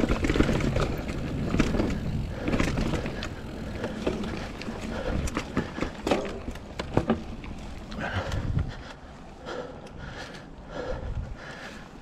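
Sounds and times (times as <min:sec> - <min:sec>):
bike tyres rumbling on dirt: 0:00.0 - 0:08.9
bike clicks and rattles: 0:00.0 - 0:12.0
wind: 0:00.0 - 0:12.0.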